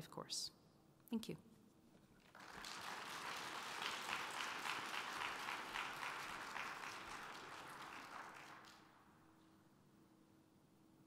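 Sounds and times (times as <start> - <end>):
audience applauding: 2.2 - 9.1.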